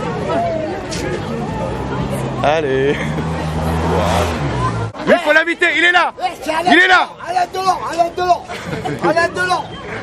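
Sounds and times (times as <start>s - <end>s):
traffic noise rushing: 0.0s - 10.0s.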